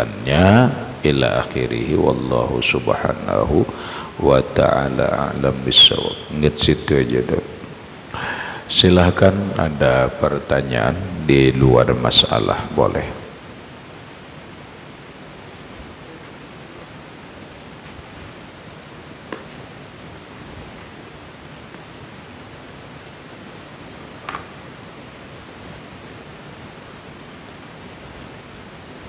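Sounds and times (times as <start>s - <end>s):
background hiss: 0.0s - 29.0s.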